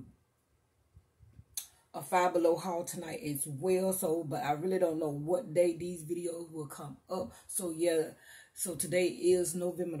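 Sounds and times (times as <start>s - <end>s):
woman speaking: 2.0s - 10.0s
woman breathing in sharply: 8.2s - 8.6s.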